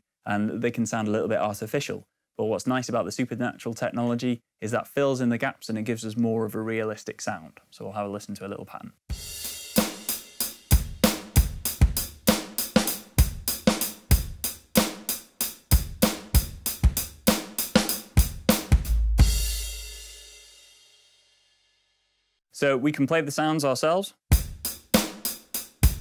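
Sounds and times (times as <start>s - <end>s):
drum pattern: 9.1s - 20.5s, 24.3s - 26.0s.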